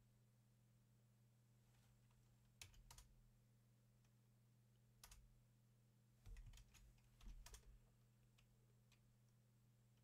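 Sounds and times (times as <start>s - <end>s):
faint low hum: 0.0s - 10.0s
computer keyboard keystrokes: 2.6s - 3.1s, 5.0s - 5.3s, 6.2s - 7.8s.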